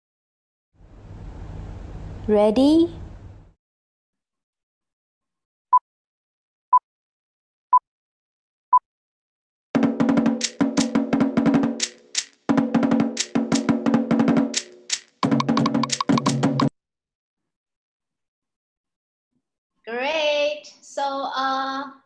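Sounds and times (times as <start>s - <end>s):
fast drumming with slit drums: 9.8s - 16.7s.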